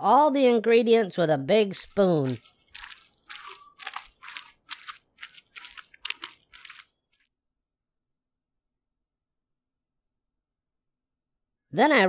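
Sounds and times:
spoon stirring thick dough: 1.7 - 6.9.

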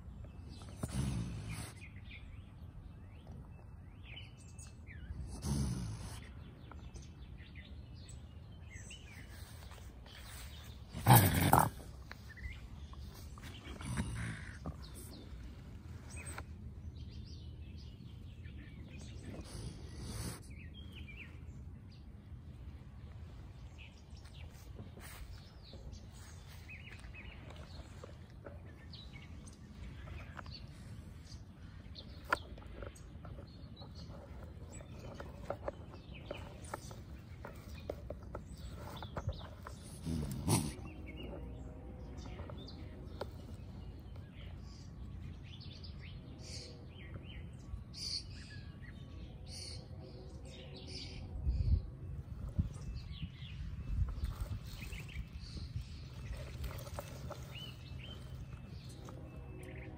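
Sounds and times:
raccoon growling: 0.5 - 1.9, 5.1 - 6.4, 9.4 - 16.4, 24.3 - 44.9.

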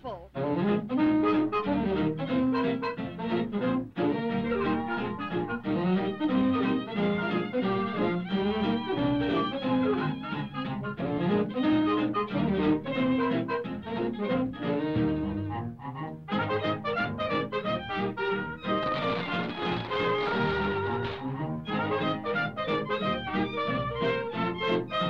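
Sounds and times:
orchestral cartoon music: 0.1 - 25.0.

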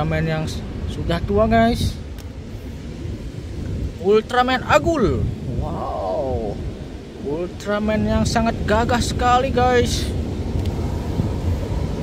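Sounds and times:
wind rumble on microphone: 0.0 - 12.0.

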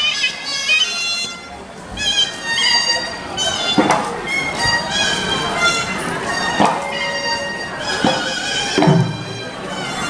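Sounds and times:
nasal oboe melody: 0.0 - 10.0
drum strokes: 3.5 - 9.9.

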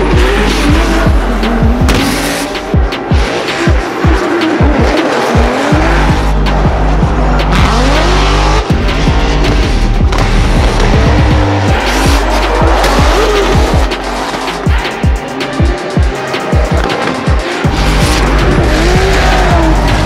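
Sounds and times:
background music with held bass: 0.0 - 20.0
car engines revving: 0.0 - 20.0.

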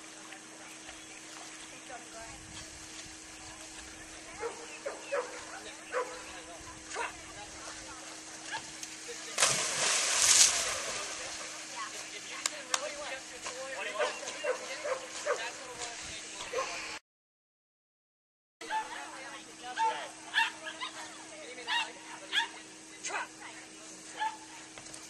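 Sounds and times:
dog barking: 4.4 - 6.3, 6.9 - 7.2, 14.0 - 15.5, 16.5 - 16.8, 19.8 - 21.1, 21.7 - 22.6, 24.1 - 24.4
dog splashing into water: 9.3 - 11.6.

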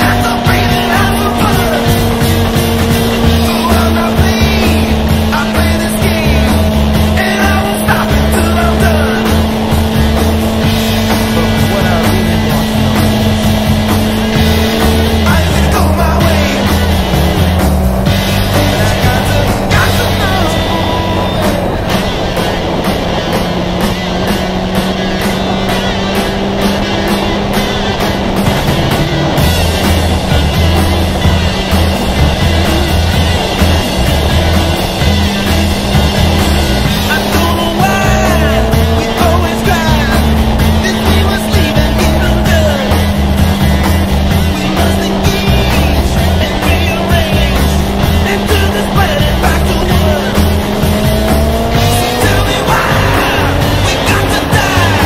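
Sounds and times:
motorcycle engine cruising: 0.0 - 55.0
music with steady beat: 0.0 - 55.0.

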